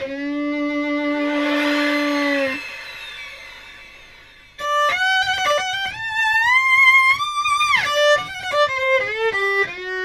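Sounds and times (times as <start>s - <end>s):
violin long note: 0.0s - 7.1s.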